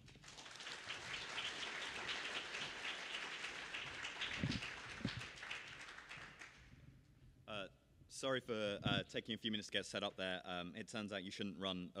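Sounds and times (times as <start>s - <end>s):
audience applauding: 0.0s - 6.6s.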